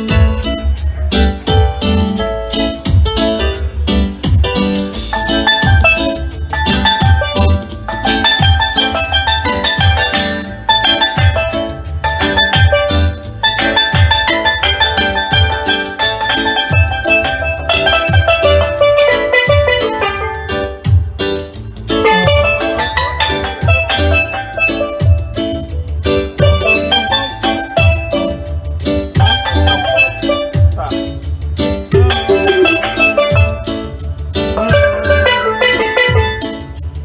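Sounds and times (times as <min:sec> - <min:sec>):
drum beat with low thump: 0:00.0 - 0:37.0
steelpan notes: 0:00.0 - 0:37.0.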